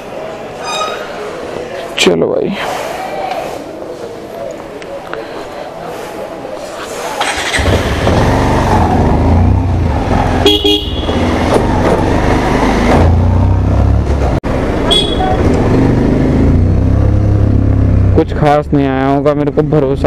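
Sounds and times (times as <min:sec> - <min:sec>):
motorcycle engine riding: 0:07.2 - 0:19.2
vehicle horn toot: 0:10.4 - 0:11.3, 0:14.9 - 0:15.4.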